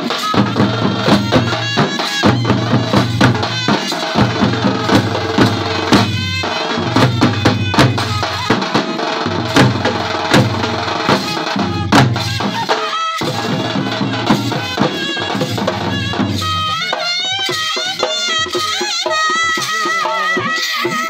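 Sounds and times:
drums beaten by sticks and hands: 0.0s - 21.0s
trumpet melody: 0.0s - 21.0s.

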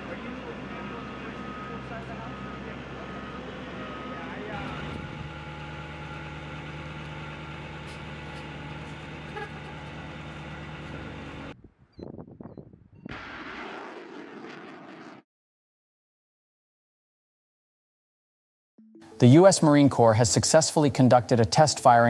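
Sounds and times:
vehicle engine idling: 0.0s - 11.6s.

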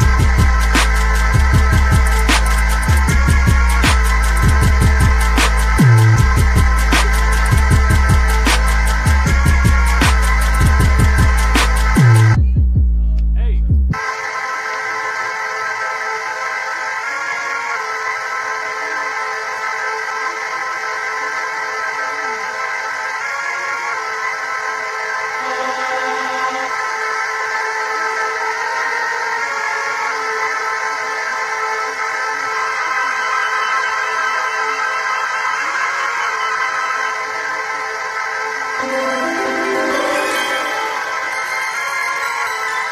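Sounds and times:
sustained synthesizer chords: 0.0s - 12.4s, 24.4s - 30.4s, 37.5s - 42.9s.

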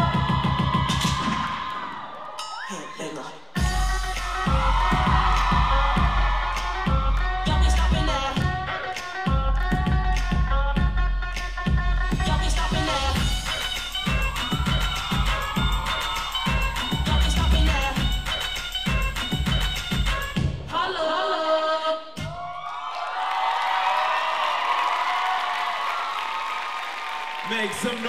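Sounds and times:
audience cheering and whooping: 0.0s - 8.4s, 12.8s - 19.6s, 22.2s - 28.0s
hip-hop dance music: 0.0s - 22.4s.

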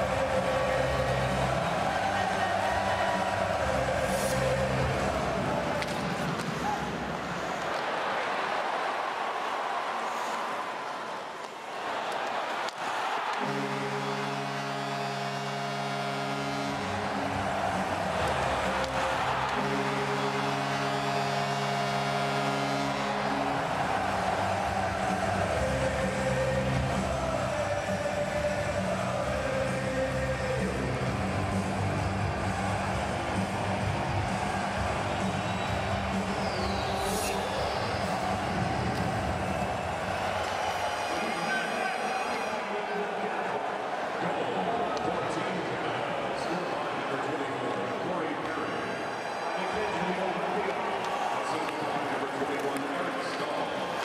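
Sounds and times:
crowd din: 12.2s - 54.0s
long held musical chords: 13.4s - 40.2s.

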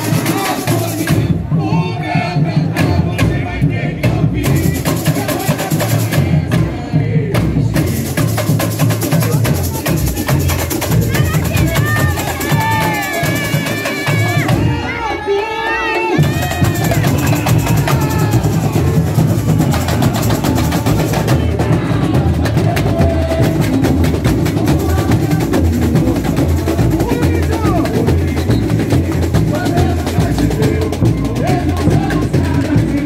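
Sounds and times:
drum corps playing samba rhythm: 0.0s - 33.0s.

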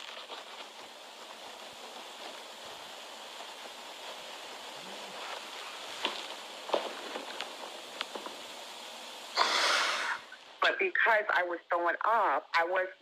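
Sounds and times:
faint background hiss: 0.0s - 13.0s.

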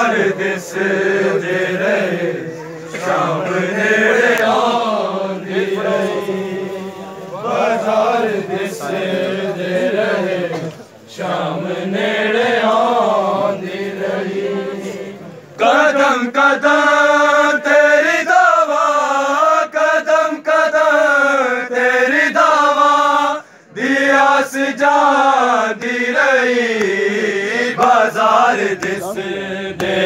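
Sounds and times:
men chanting a lament: 0.0s - 30.0s.

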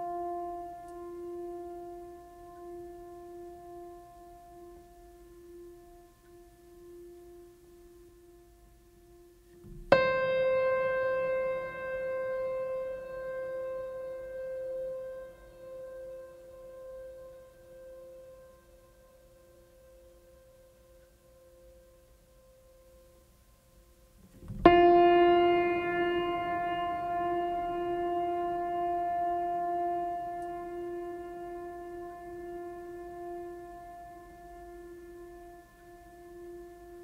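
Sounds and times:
music of long held notes: 0.0s - 23.3s, 24.4s - 37.0s.

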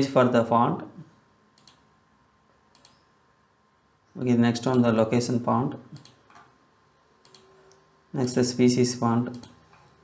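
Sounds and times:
faint computer mouse clicks: 1.6s - 1.8s, 2.7s - 3.0s, 5.9s - 6.5s, 7.2s - 8.4s.

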